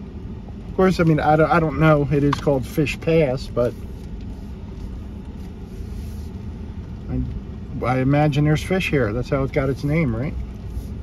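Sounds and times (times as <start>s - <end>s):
engine and tyre rumble inside cab: 0.0s - 11.0s.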